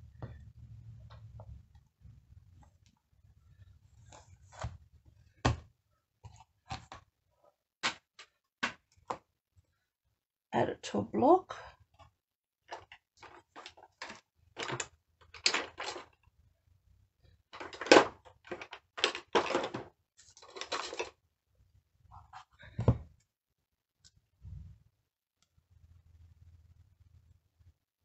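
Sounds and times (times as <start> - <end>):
rustles and clicks of plastic and card: 12.7 - 16.2, 17.6 - 21.2
knocks on a desk: 22.8 - 23.1.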